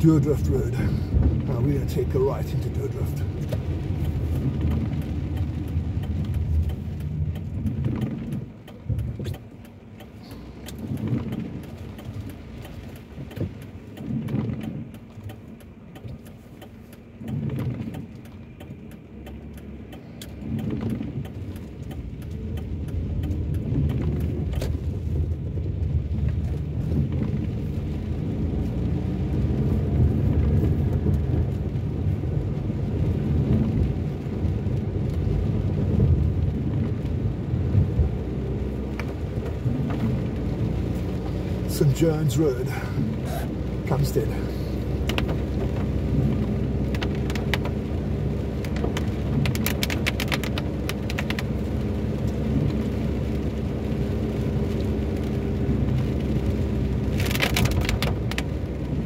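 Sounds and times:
car engine and tyre noise: 0:00.0 - 0:59.0.

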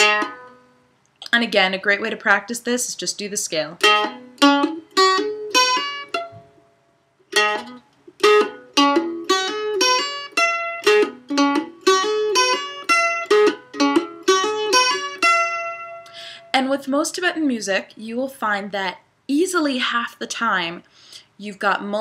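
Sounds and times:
mandolin playing a scale: 0:00.0 - 0:00.9, 0:03.2 - 0:16.7.

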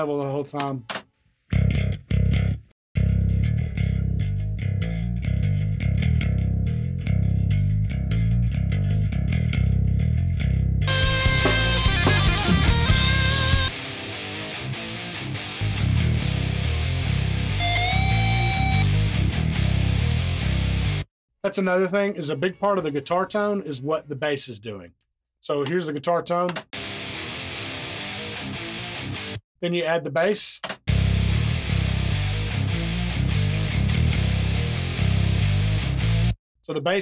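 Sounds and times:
distorted guitars: 0:01.5 - 0:21.1, 0:26.5 - 0:29.4, 0:30.9 - 0:36.4
electric bass riff: 0:01.5 - 0:21.1, 0:26.8 - 0:29.4, 0:30.9 - 0:36.4
bent lead guitar note: 0:10.8 - 0:21.0.

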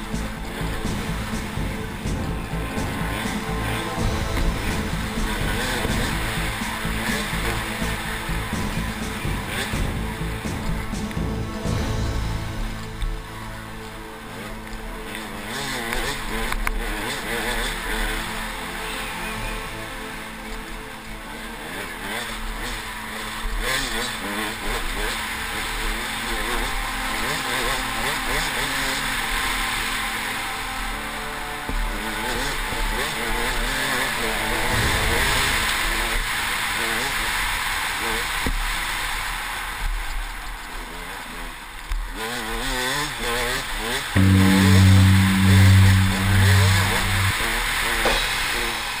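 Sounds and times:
loud low pulsing tone: 0:00.0 - 0:15.0, 0:44.2 - 0:48.3
dirt bike engine revving: 0:00.0 - 0:39.0, 0:40.8 - 0:49.0.

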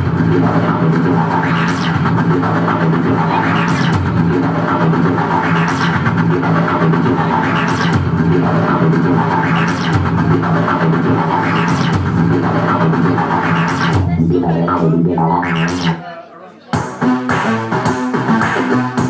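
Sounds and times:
live band music: 0:10.7 - 0:16.0.

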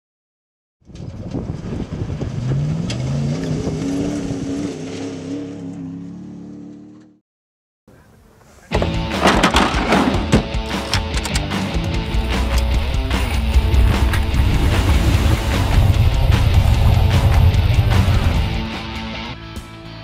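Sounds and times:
vehicle engine accelerating: 0:00.9 - 0:07.2, 0:11.7 - 0:19.3
loud rock music: 0:08.7 - 0:20.0.

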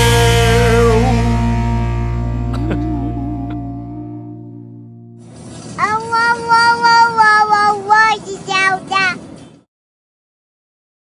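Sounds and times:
toddler singing: 0:05.8 - 0:09.2.

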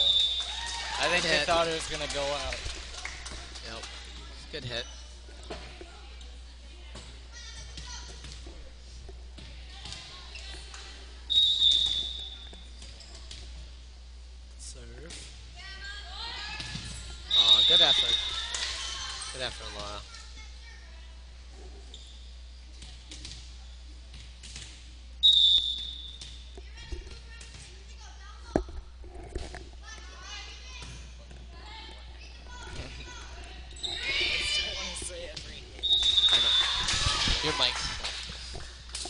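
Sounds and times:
referee whistle: 0:00.0 - 0:00.6, 0:11.3 - 0:12.4, 0:17.3 - 0:18.3, 0:25.2 - 0:26.2, 0:35.8 - 0:36.8
voices cheering: 0:00.0 - 0:03.2, 0:17.3 - 0:19.4, 0:35.8 - 0:38.3.

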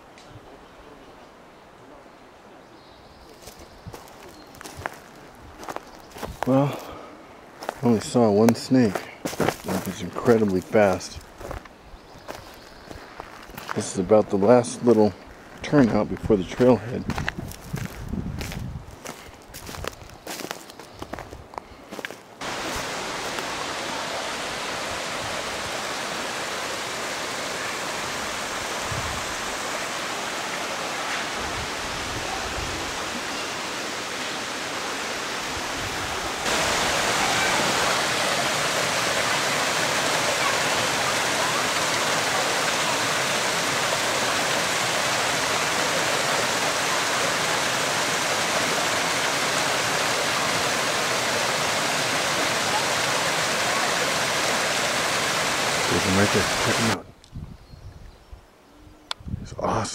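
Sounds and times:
creek running over rocks: 0:03.3 - 0:57.0.

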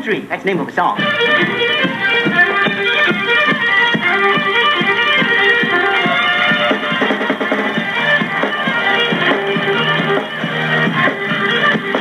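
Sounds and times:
country band playing: 0:00.5 - 0:12.0.

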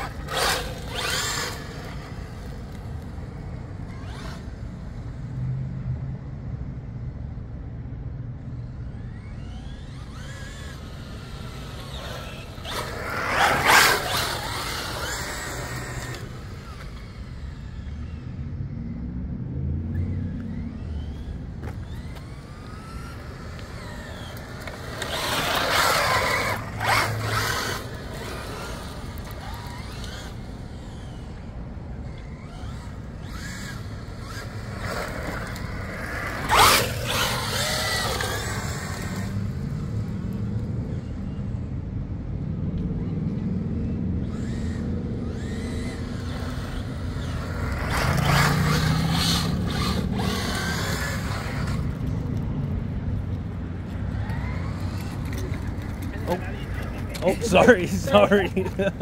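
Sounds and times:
electric motor whining: 0:00.0 - 0:03.0, 0:09.0 - 0:18.0, 0:20.0 - 0:39.7, 0:44.2 - 0:52.2.

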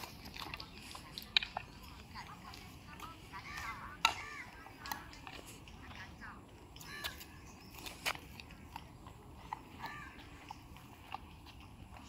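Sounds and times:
faint children's voices: 0:00.0 - 0:07.9.

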